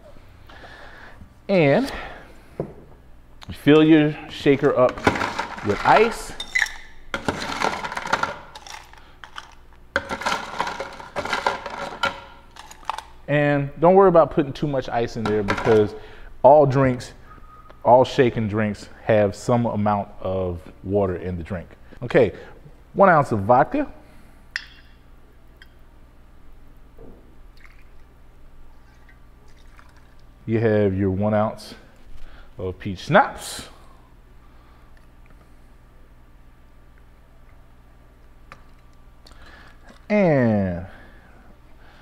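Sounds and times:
ice cubes clattering: 4.9 - 13.1
liquid pouring into metal cup: 28.8 - 30.3.

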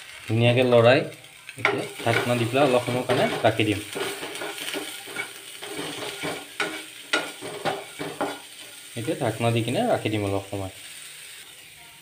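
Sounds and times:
vegetables sizzling in oil: 0.0 - 12.0
spatula scraping and tapping pan: 1.6 - 9.2.

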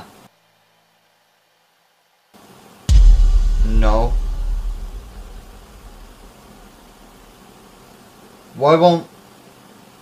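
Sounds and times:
faint hiss: 0.0 - 10.0
deep low boom: 2.9 - 6.7.

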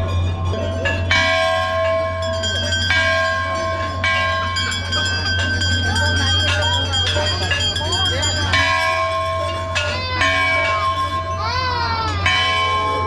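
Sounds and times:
brass bells ringing: 0.0 - 13.0.

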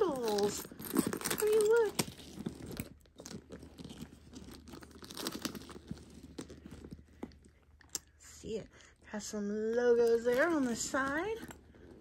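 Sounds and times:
handbag rustling on a quilt: 0.0 - 7.6.

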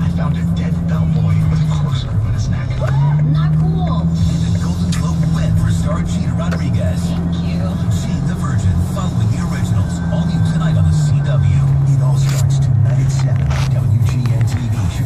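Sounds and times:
car engine and road drone: 0.0 - 15.0.

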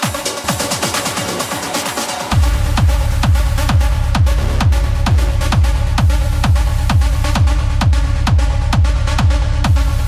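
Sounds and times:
hi-hats and percussion: 0.0 - 10.0
kick drum: 0.0 - 10.0.

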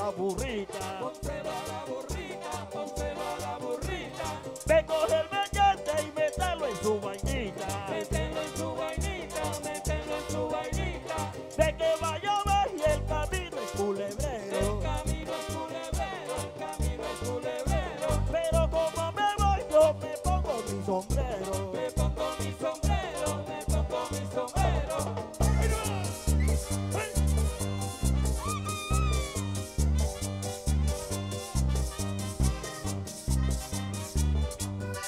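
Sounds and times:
accordion band playing dance music: 0.0 - 35.0
driving drum beat: 25.4 - 30.2.

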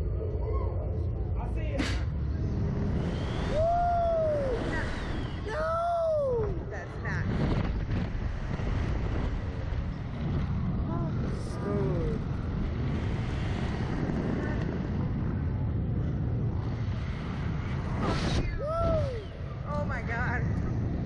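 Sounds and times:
wind rushing over microphone: 0.0 - 21.0
riders yelping: 3.3 - 6.4.

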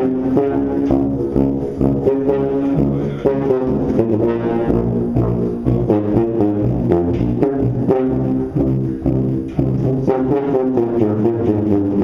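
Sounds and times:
sousaphones playing brass fanfare: 0.0 - 12.0.

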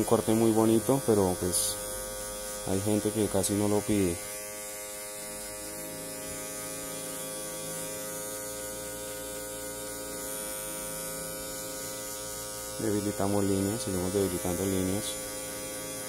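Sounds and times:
electric hair clipper buzzing: 0.0 - 16.0.

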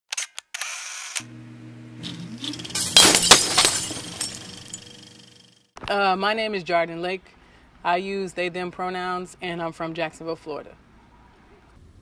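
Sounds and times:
crashing clattering hits: 2.0 - 5.2.

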